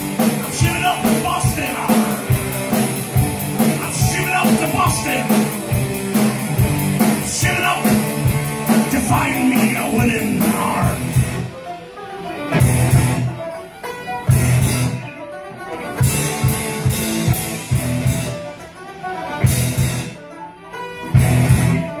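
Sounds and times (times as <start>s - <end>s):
bass and cymbal hits: 0.0s - 11.5s
live band with violins and banjo: 0.0s - 22.0s.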